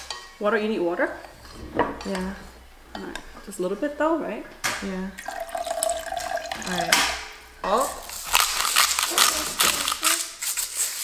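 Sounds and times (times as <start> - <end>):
salt shaker rattling: 7.8 - 11.0.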